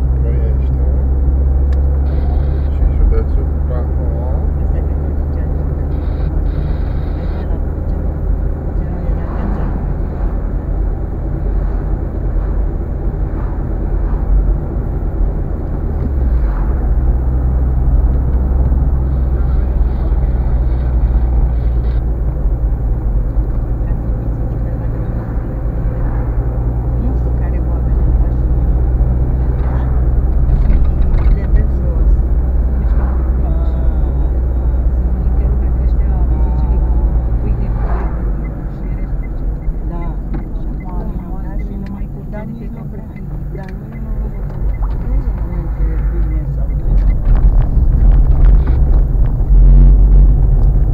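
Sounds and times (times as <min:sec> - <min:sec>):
car engine and tyre drone: 0:00.0 - 0:50.9.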